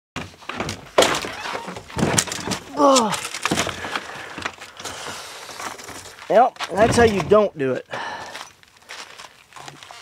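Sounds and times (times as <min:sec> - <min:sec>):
drone frame clunking and knocking: 0:06.8 - 0:07.5.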